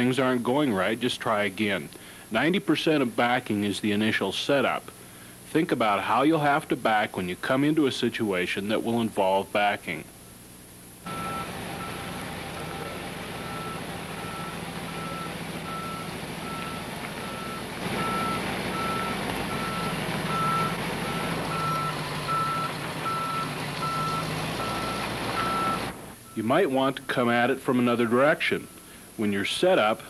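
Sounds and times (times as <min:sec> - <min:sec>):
truck engine running: 0:11.1 - 0:26.4
backup alarm beeping: 0:11.1 - 0:27.2.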